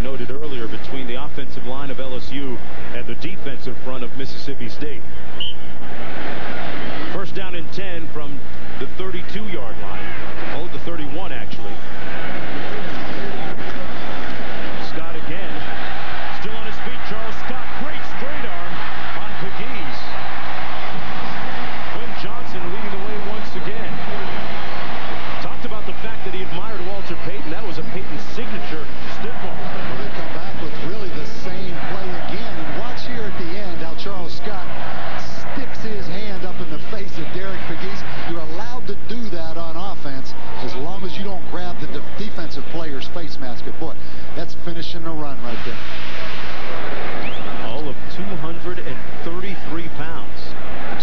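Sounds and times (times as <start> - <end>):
voices: 7.1 - 20.3, 25.4 - 46.4.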